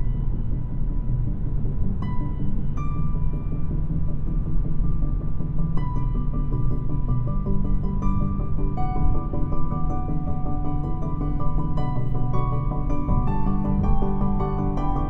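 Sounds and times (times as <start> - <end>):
electronic music in car cabin: 0.0 - 15.0.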